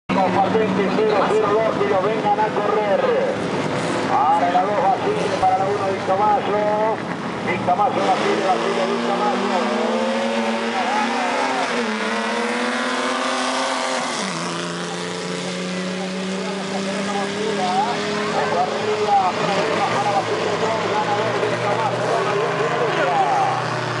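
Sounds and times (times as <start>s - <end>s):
crowd voices: 0.1s - 10.0s, 10.6s - 11.9s, 14.2s - 24.0s
racing car engines at full throttle: 0.1s - 24.0s.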